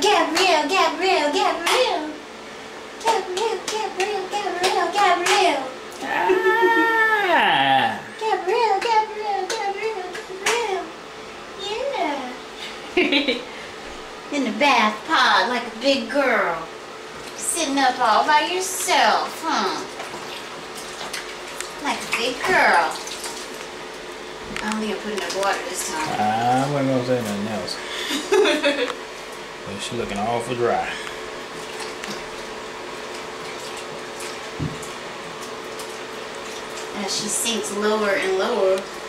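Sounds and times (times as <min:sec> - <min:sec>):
person clapping: 0:03.0 - 0:05.5, 0:08.8 - 0:10.6
person crooning sing-song tune: 0:03.0 - 0:11.0
baby laughing: 0:06.1 - 0:07.4
water splashing in plastic bath: 0:18.8 - 0:27.4, 0:31.4 - 0:37.4
water dripping: 0:19.9 - 0:25.9.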